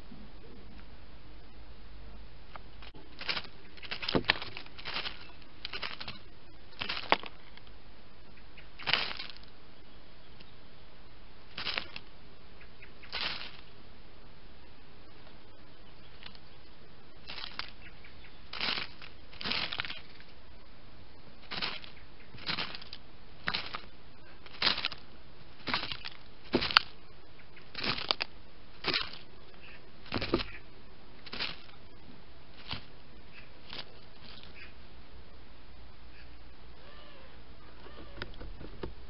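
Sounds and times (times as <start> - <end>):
dry leaf litter rustling: 2.8 - 7.8, 8.7 - 9.6, 11.4 - 12.2, 12.8 - 13.8, 16.0 - 16.6, 17.2 - 20.4, 21.3 - 34.7.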